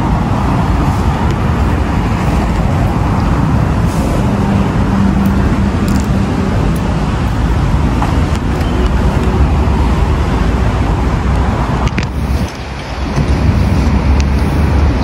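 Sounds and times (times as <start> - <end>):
city road traffic: 0.0 - 15.0.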